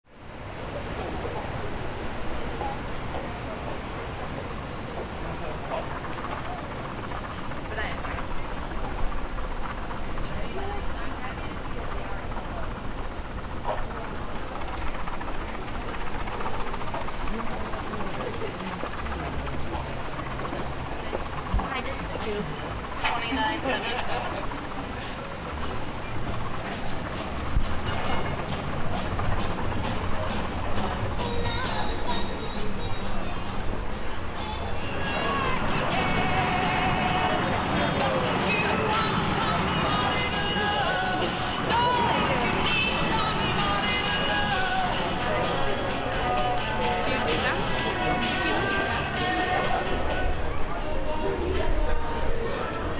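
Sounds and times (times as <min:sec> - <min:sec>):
ferris wheel mechanical rumble: 0:00.1 - 0:52.9
steady low outdoor noise: 0:00.1 - 0:52.9
people talking: 0:00.6 - 0:09.2, 0:10.0 - 0:15.2, 0:16.2 - 0:52.9
music playing: 0:27.1 - 0:52.9.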